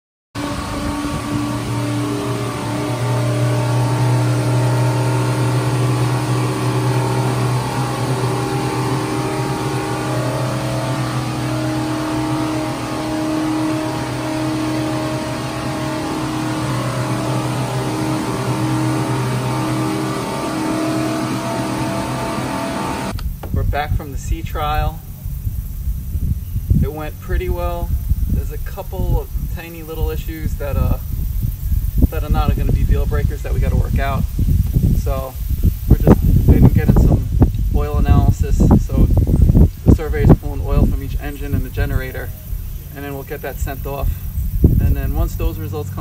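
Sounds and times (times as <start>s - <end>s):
boat engines droning: 0.4s - 46.0s.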